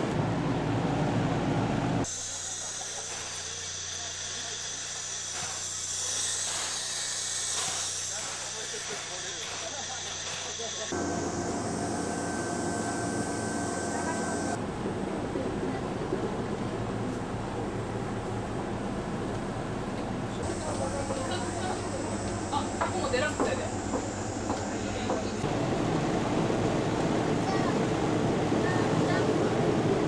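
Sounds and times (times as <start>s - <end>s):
steam hissing: 2.1s - 14.6s, 20.4s - 30.0s
low hum: 11.0s - 30.0s
passenger coach rumbling: 11.0s - 30.0s.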